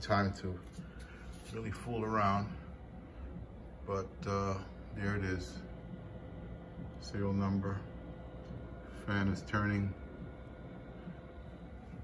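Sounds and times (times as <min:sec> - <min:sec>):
cooling fan whirring: 0:00.0 - 0:12.0
low steady hum: 0:00.0 - 0:12.0.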